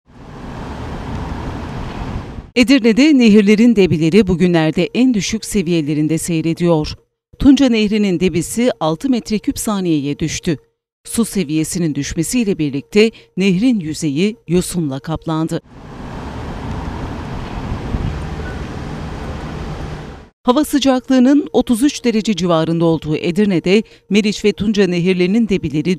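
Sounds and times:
low rumble of distant traffic: 0.1 - 2.5, 15.7 - 20.3.

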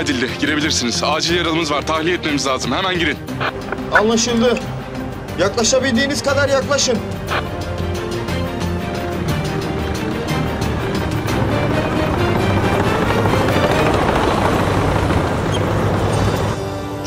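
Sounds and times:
dramatic music with held notes: 0.0 - 17.0
tracked vehicles driving: 9.0 - 17.0.

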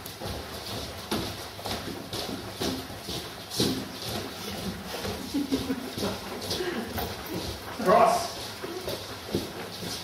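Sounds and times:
footsteps on wooden floor: 0.0 - 10.0.

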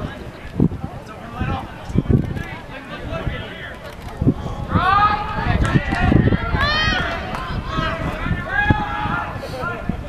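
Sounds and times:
people shouting: 4.6 - 9.8.

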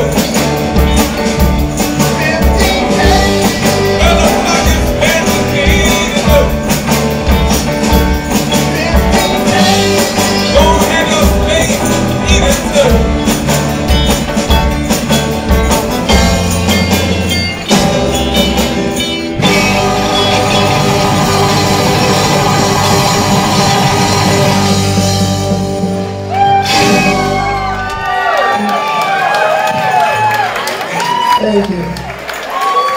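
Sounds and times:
electric bass: 0.0 - 28.1
live band final chord: 0.0 - 28.1
electric guitar: 0.0 - 28.7
drum kit: 0.0 - 31.2
audience cheering and whooping: 26.2 - 32.9.

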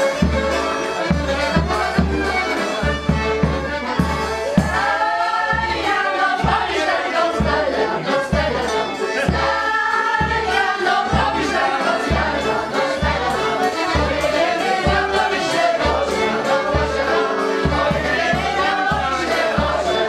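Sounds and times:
folk band playing dance tune: 0.0 - 20.0
group of voices singing: 0.1 - 20.0.

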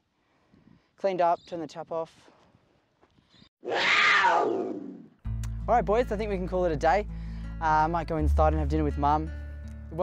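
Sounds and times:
big cat roaring: 3.6 - 5.1.

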